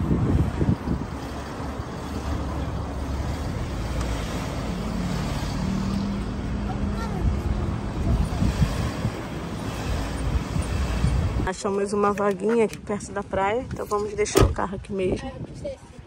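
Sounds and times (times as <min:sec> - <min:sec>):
car engine and tyre rumble: 0:00.0 - 0:15.8.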